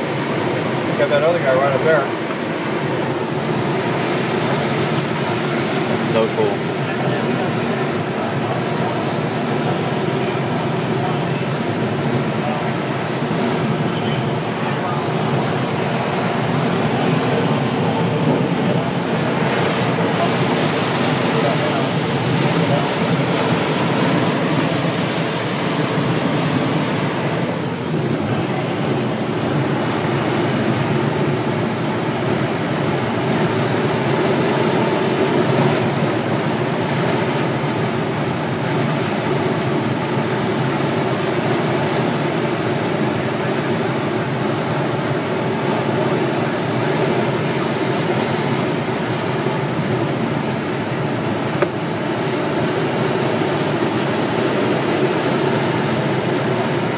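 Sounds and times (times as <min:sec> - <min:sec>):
rush of air around cockpit: 0:00.0 - 0:56.9.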